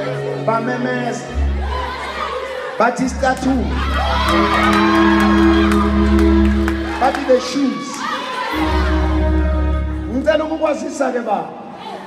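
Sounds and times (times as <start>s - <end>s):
keyboard sustained chord: 3.1s - 7.5s, 8.5s - 10.8s.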